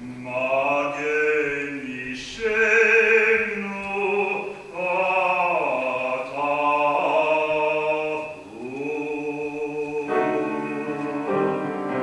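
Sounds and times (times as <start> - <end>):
man singing classical solo: 0.0 - 12.0.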